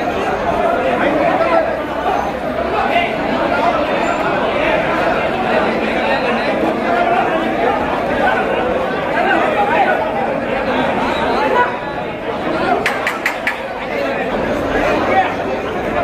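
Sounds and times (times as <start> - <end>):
crowd chatter: 0.0 - 16.0
sharp clicks: 12.8 - 13.7.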